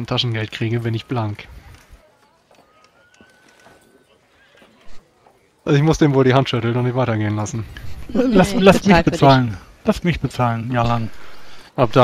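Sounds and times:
faint voices: 0.0s - 9.8s.

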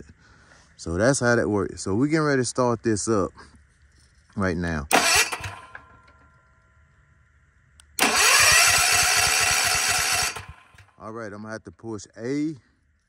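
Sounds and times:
generator starter cranking engine: 4.9s - 6.3s, 7.9s - 11.0s.

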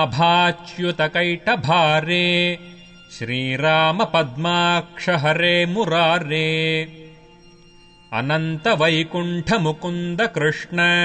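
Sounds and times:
person chanting devotional verse: 0.0s - 7.2s, 8.1s - 11.0s.

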